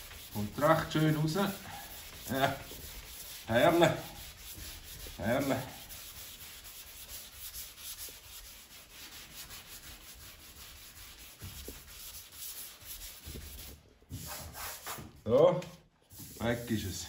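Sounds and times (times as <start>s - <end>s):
sandpaper scrubbing on primer: 0.0s - 15.2s, 16.1s - 17.0s.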